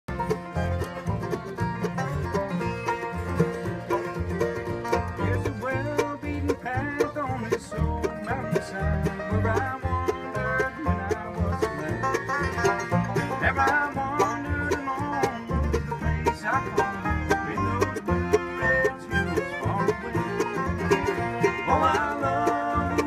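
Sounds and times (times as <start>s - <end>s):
upright bass: 0.0s - 23.0s
banjo: 0.1s - 23.0s
fiddles: 0.1s - 23.0s
strummed acoustic guitar: 0.1s - 23.0s.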